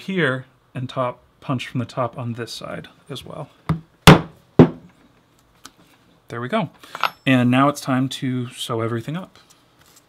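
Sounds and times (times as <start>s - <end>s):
chisel striking leather: 3.7s - 4.8s.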